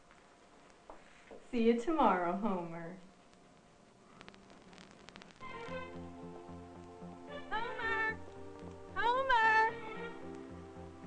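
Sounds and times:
background music: 5.4 - 11.0.

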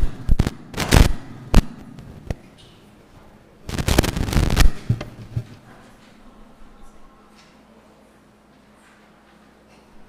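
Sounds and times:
microphone handling knocks: 3.7 - 5.6.

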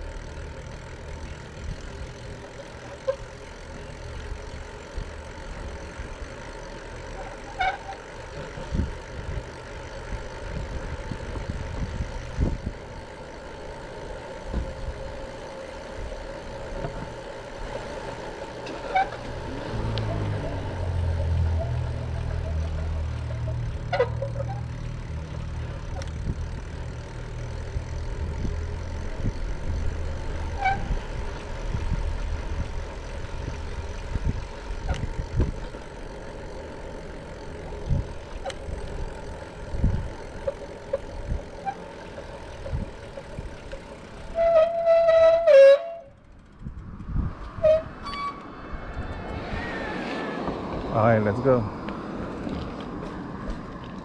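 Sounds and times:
low rumble of ride on street: 0.0 - 54.0
short squeaks: 2.8 - 3.4, 7.0 - 8.6, 18.6 - 25.0, 30.4 - 31.2, 34.8 - 35.7, 40.5 - 43.2, 44.2 - 46.3, 47.4 - 48.6.

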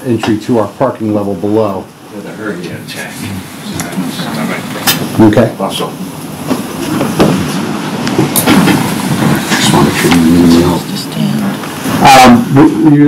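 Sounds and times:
indistinct talking: 0.0 - 13.0
room noise: 0.0 - 13.0.

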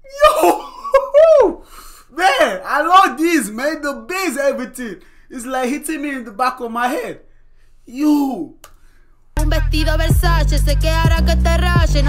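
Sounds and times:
man laughing: 0.1 - 1.6.

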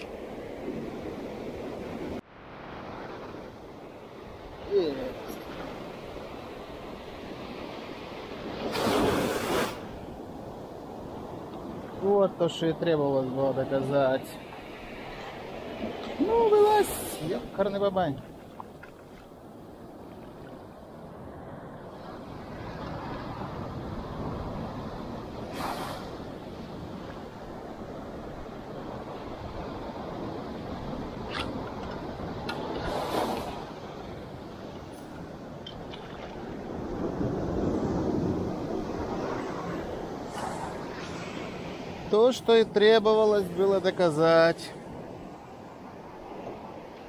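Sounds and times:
sea surf washing onto shore: 0.0 - 47.0
wind on microphone: 18.2 - 42.7.

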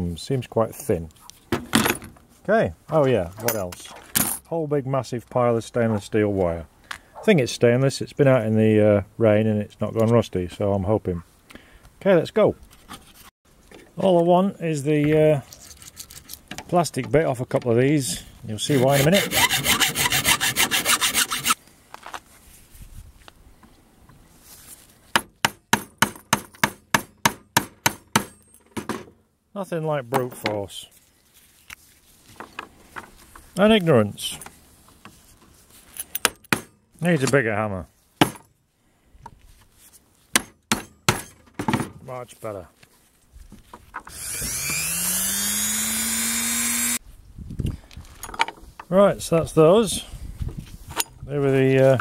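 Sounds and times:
hacksaw cutting plastic: 18.7 - 21.6, 44.1 - 47.0
rotary tool whining: 18.7 - 21.6, 44.1 - 47.0.

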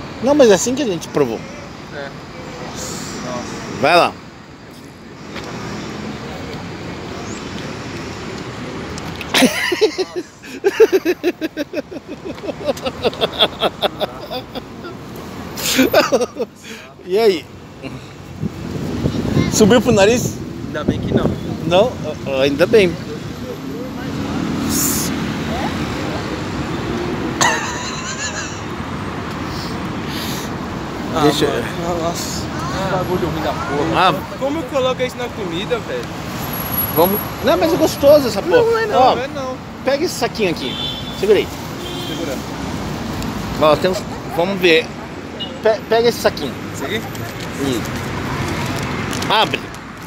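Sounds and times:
road traffic passing cars: 0.0 - 50.0.

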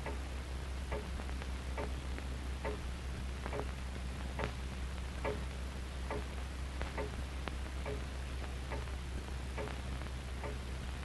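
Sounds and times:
clock ticking: 0.0 - 0.2, 0.9 - 1.2, 1.8 - 2.0, 2.6 - 2.9, 3.5 - 3.7, 4.4 - 4.6, 5.2 - 5.5, 6.1 - 7.2, 7.8 - 8.1, 8.7 - 9.8, 10.4 - 10.7
steady low hum: 0.0 - 11.0.

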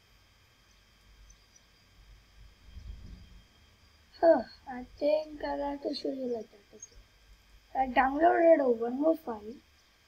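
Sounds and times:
faint low rumble: 0.9 - 10.0.

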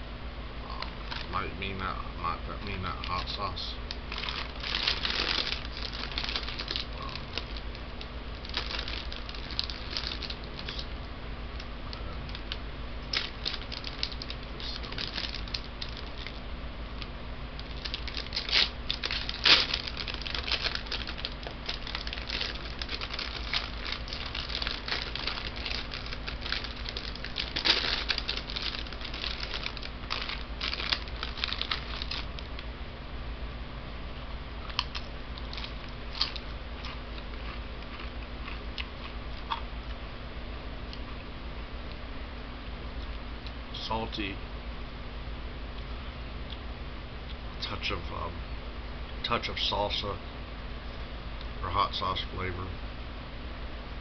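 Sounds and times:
steady low hum: 0.0 - 54.0
foil chip bag crinkling: 0.9 - 1.8, 2.6 - 11.0, 12.3 - 16.4, 17.0 - 32.6, 34.7 - 39.1.

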